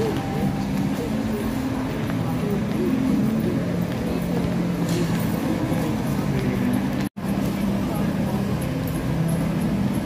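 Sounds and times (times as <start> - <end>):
indistinct voices of shoppers: 0.0 - 10.0.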